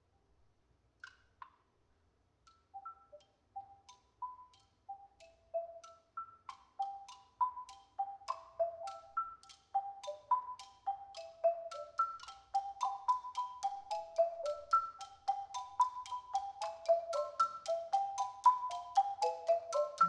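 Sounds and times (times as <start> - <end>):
marimba melody: 4.3 - 20.0.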